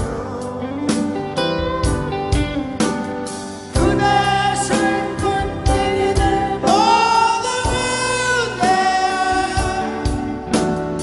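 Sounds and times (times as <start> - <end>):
man singing long held notes: 0.0 - 2.1, 3.7 - 10.6
acoustic guitar and band: 0.0 - 11.0.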